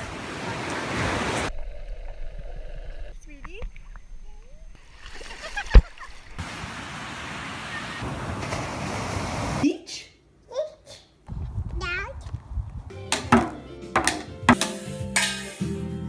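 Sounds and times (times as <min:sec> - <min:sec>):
ocean surf: 0:00.0 - 0:01.5, 0:06.4 - 0:09.6
water sloshing: 0:03.3 - 0:06.5
wind noise: 0:11.3 - 0:12.9.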